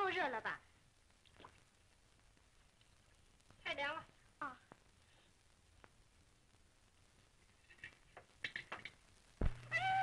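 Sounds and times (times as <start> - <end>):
cat meowing: 9.6 - 10.0.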